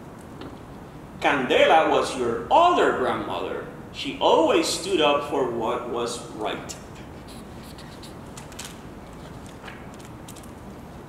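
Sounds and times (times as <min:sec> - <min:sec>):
faint low room hum: 0:00.0 - 0:11.0
book pages rustling: 0:07.3 - 0:10.6.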